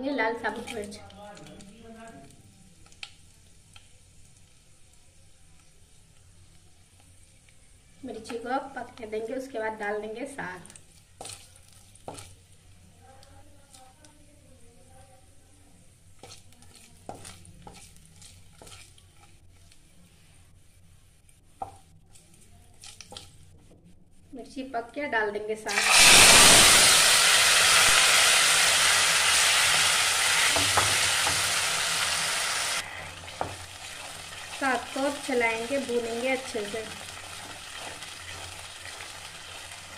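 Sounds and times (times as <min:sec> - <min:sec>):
chillies frying in hot oil: 0:00.0 - 0:20.4, 0:25.4 - 0:39.9
wooden spatula stirring: 0:10.7 - 0:12.9, 0:16.0 - 0:20.2, 0:32.8 - 0:39.9
greens sizzling in hot oil: 0:25.7 - 0:39.9.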